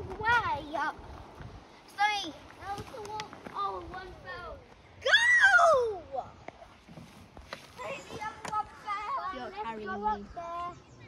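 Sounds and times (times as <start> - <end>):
faint children's voices: 7.6 - 11.0.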